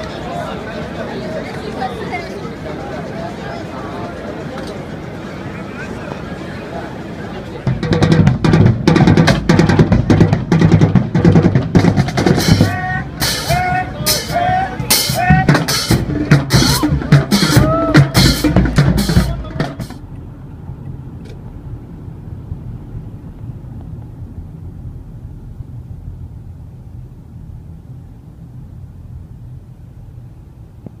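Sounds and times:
car road and engine rumble: 0:03.8 - 0:31.0
drumming on buckets and drums: 0:07.6 - 0:20.0
voices shouting: 0:12.4 - 0:20.0.

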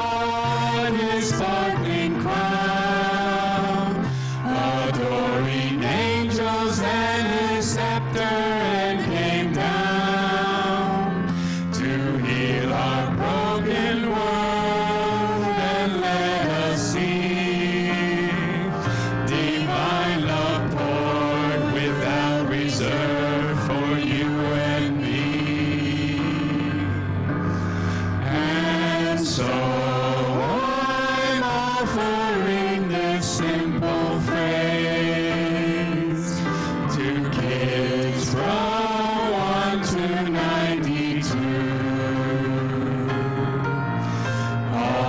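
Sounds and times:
vocal quartet singing in harmony: 0:00.0 - 0:45.0.

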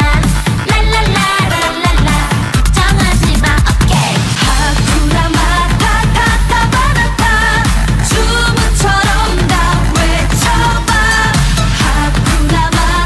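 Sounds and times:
pop song with dance beat: 0:00.0 - 0:13.0.

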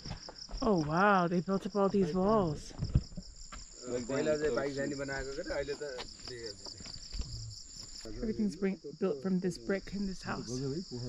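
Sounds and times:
high-pitched insect chorus: 0:00.0 - 0:11.0.

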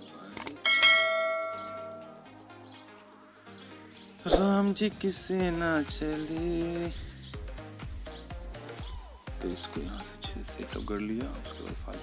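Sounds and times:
faint background music: 0:00.0 - 0:12.0
bell-like ding: 0:00.6 - 0:02.2.

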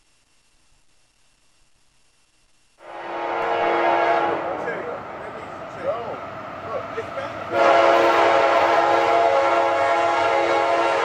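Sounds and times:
locomotive air horn chord: 0:02.8 - 0:04.9, 0:07.5 - 0:11.0.

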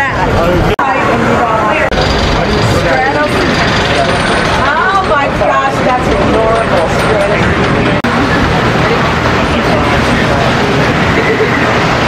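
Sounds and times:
voices: 0:00.0 - 0:12.0
coaster cars rumbling in wooden trough: 0:01.9 - 0:12.0.

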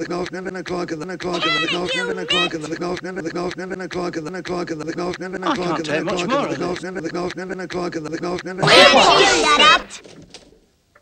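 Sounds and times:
man's speech stutter loop: 0:00.1 - 0:09.9.

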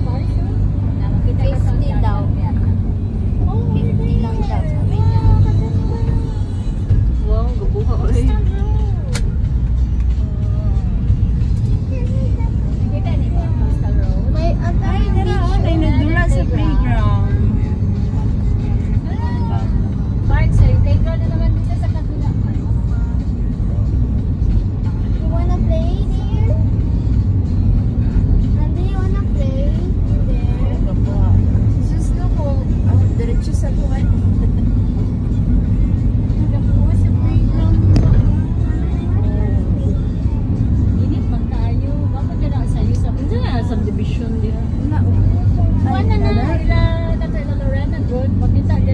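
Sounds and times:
music: 0:00.0 - 0:48.9
road and engine rumble: 0:00.0 - 0:48.9.

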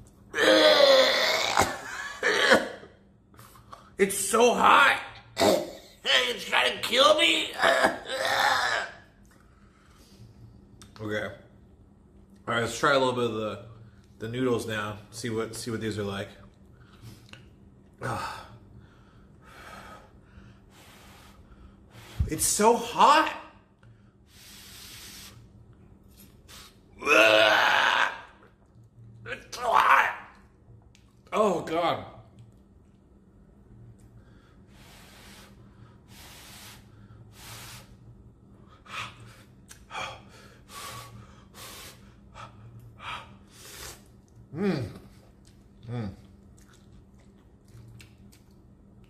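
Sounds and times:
man blowing through pursed lips: 0:24.2 - 0:25.5, 0:34.6 - 0:38.1, 0:38.8 - 0:44.8.

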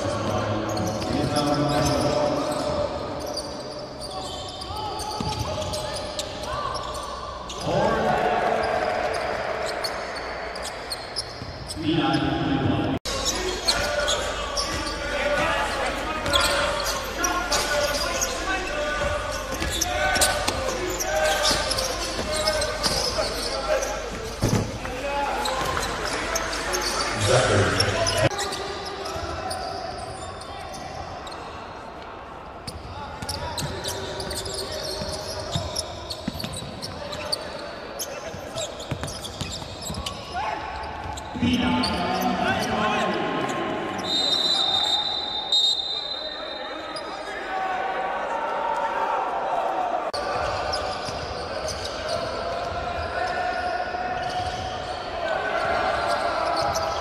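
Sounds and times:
basketball bouncing on court: 0:38.8 - 0:40.2.

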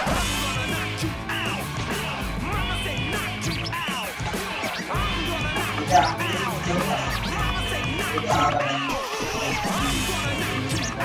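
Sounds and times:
music with steady beat: 0:00.0 - 0:11.0
person's voice over music: 0:05.0 - 0:11.0.

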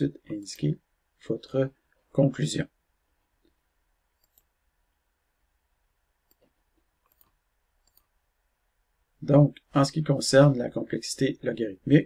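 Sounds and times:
faint computer mouse clicks: 0:04.2 - 0:04.5, 0:06.2 - 0:08.2.

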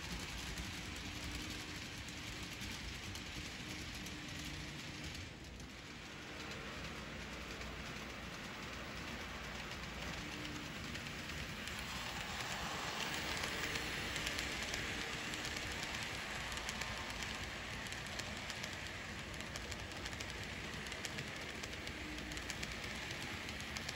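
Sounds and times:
model train wheels rolling on rail: 0:00.0 - 0:23.9.

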